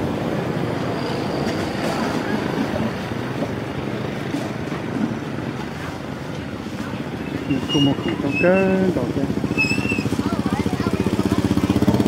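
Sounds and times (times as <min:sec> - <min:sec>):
rumble of vehicle engines: 0:00.0 - 0:12.0.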